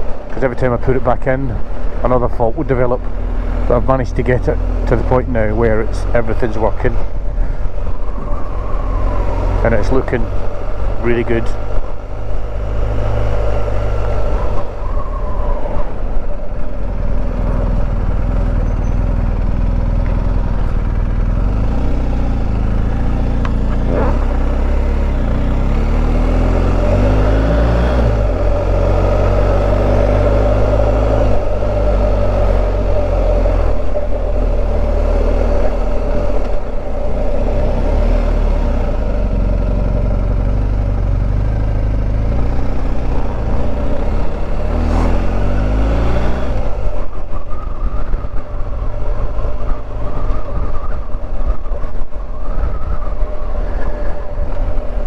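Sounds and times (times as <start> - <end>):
motorcycle engine pulling away: 16.9 - 51.0.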